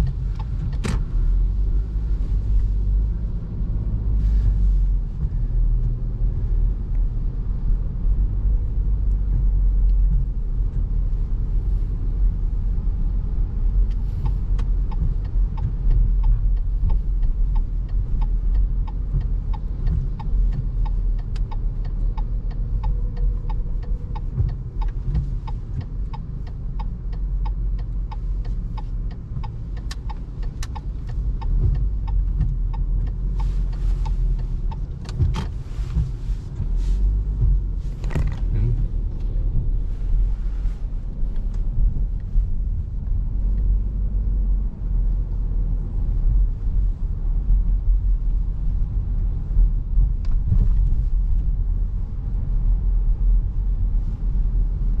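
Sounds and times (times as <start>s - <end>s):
car engine and road rumble: 0.0s - 55.0s
turn signal ticking: 0.0s - 55.0s.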